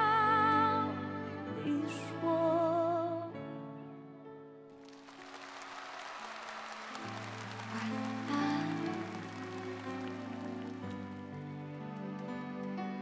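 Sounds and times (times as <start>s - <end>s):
audience applause: 4.8s - 13.0s.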